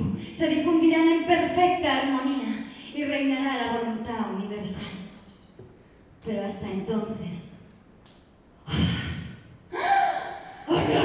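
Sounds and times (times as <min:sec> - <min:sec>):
person gasping sharply: 0:09.7 - 0:11.0.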